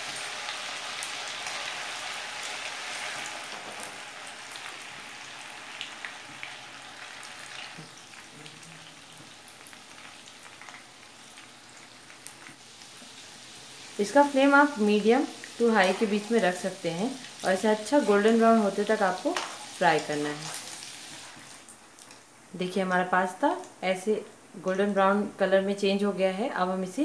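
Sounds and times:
pasta sizzling in hot oil: 0:00.0 - 0:22.1.

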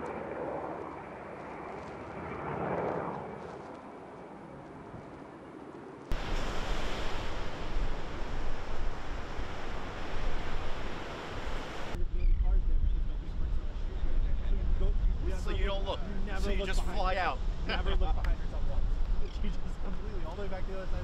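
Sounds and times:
wind: 0:00.0 - 0:21.0
surf: 0:06.1 - 0:12.0.

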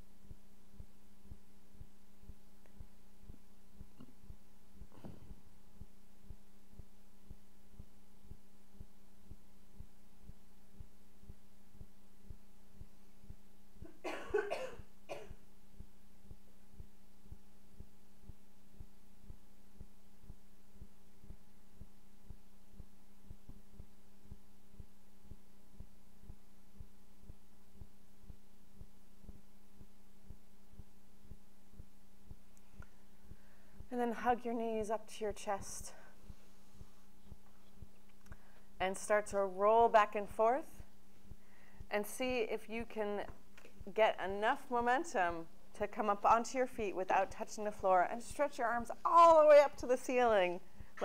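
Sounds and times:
faint low pulse: 0:00.0 - 0:48.9
low electrical hum: 0:00.0 - 0:51.0
person coughing: 0:13.9 - 0:15.4.

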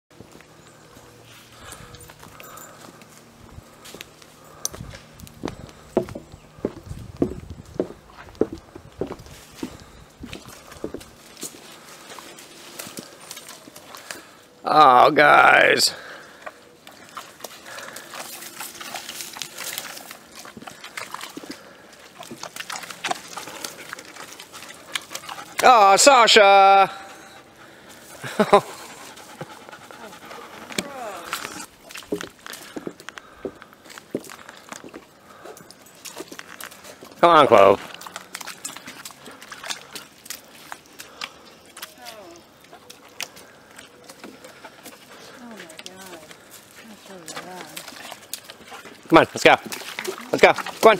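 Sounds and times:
dog paws stepping in mud: 0:00.2 - 0:14.6, 0:15.6 - 0:50.9.

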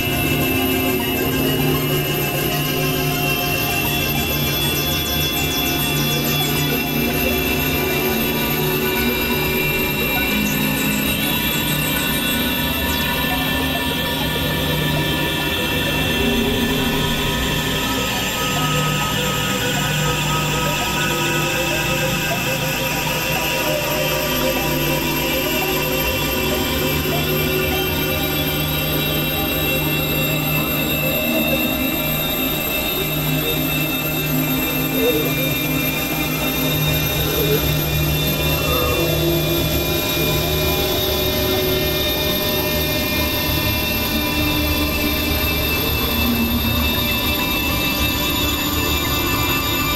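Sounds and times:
layered synthesizer drone tones: 0:00.0 - 0:49.9.

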